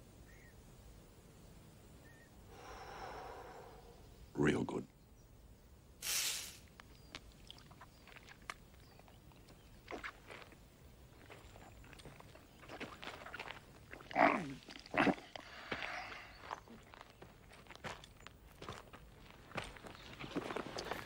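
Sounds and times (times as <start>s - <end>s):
man blowing breathy puff: 6.0s - 6.7s.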